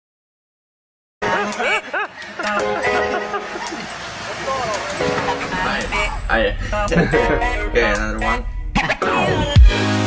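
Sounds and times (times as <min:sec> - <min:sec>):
background music: 0:01.2 - 0:10.0
steady low beat: 0:05.6 - 0:10.0.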